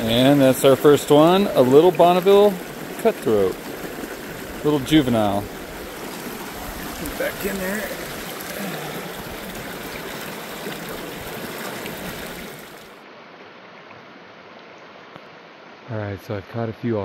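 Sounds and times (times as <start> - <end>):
creek water rushing: 0.0 - 16.0.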